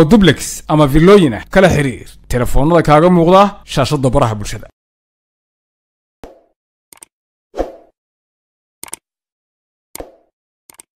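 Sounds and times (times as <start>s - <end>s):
pop sound effect: 6.2s - 6.6s, 10.0s - 10.3s
click sound effects: 10.0s - 10.9s.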